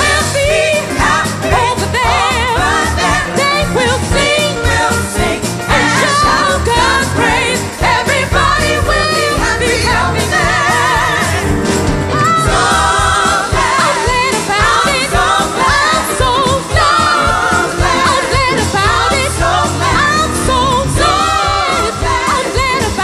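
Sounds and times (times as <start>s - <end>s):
band accompaniment: 0.0s - 23.0s
women singing gospel: 0.0s - 23.0s.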